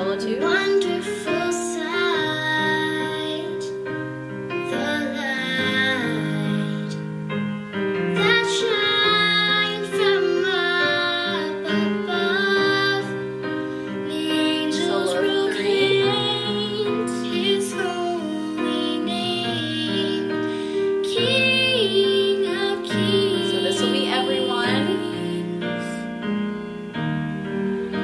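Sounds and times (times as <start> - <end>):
woman singing: 0.0 - 3.8, 4.7 - 7.2, 8.2 - 26.1
piano accompaniment: 0.0 - 28.0.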